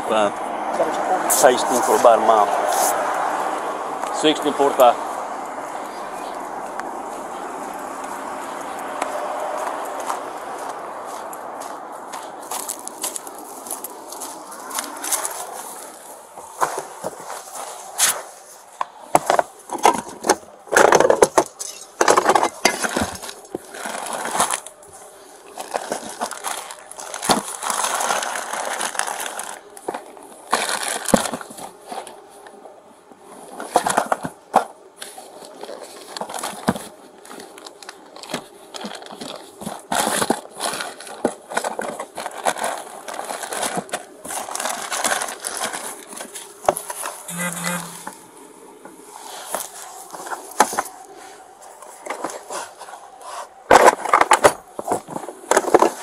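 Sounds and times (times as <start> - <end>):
rustling through clothing and packaging: 0.0 - 56.0.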